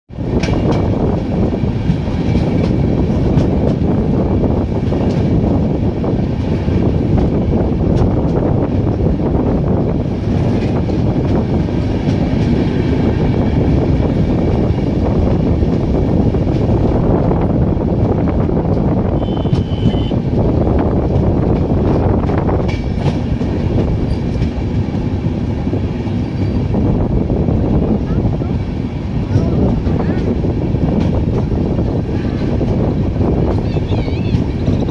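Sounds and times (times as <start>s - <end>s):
train rumbling on rails: 0.1s - 34.9s
train wheels clicking: 0.2s - 9.2s, 10.0s - 27.0s, 28.8s - 34.9s.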